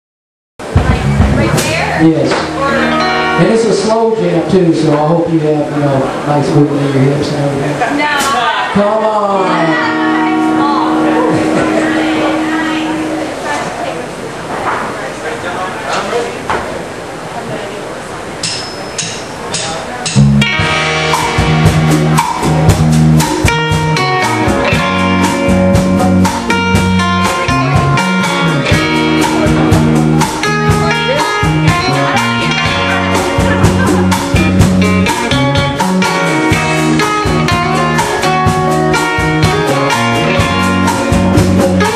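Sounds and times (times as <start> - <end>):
drum kit: 0.6 - 5.0, 9.5 - 13.4, 18.4 - 41.9
loose instrument notes: 0.6 - 7.8, 8.7 - 14.4, 18.4 - 41.9
bass guitar: 0.6 - 13.8, 19.8 - 41.9
electric guitar: 0.6 - 14.2, 20.0 - 41.9
voices: 0.7 - 20.3, 27.2 - 36.4.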